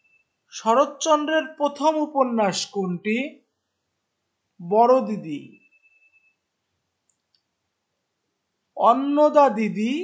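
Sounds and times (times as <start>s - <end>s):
computer mouse clicks: 7.0s - 7.5s.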